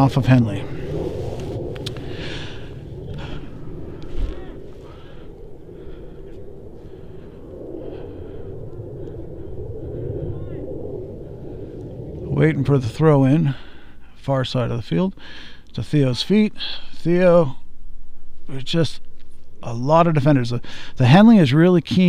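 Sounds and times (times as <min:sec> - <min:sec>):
distant voices: 0:00.0 - 0:15.0
low rumble of wind: 0:00.0 - 0:22.0.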